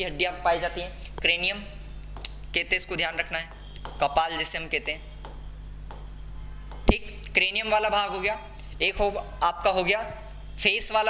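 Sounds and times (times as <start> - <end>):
faint low hum: 0.0 - 11.0
pen scratching on a screen: 2.4 - 7.1.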